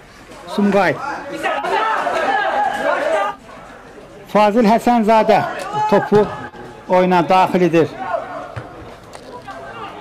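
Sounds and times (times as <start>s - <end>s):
faint voices calling out: 5.0s - 10.0s.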